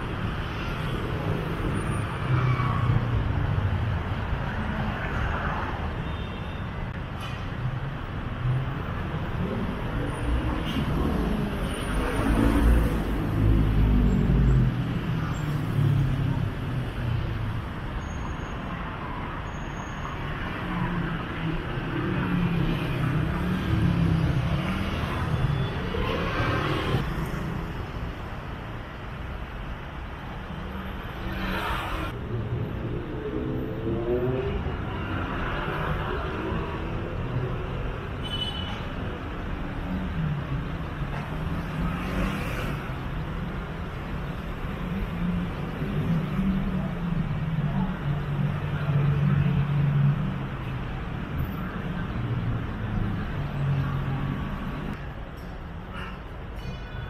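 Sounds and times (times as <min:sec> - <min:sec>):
cars and buses passing: 0:00.0 - 0:57.0.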